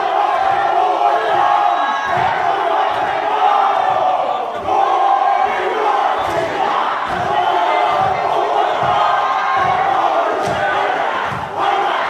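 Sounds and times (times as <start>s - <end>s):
crowd chanting and shouting: 0.0s - 12.0s.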